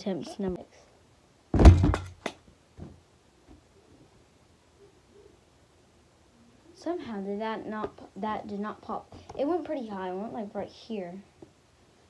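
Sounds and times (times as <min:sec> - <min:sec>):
small objects landing with thud: 0:01.5 - 0:03.0.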